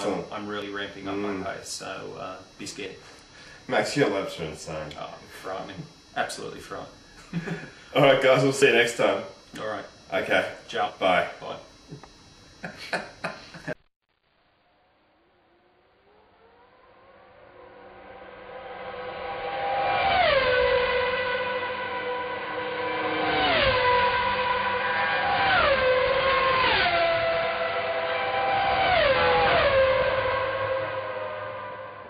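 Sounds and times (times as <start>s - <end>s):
racing cars passing at high speed: 17.3s - 32.0s.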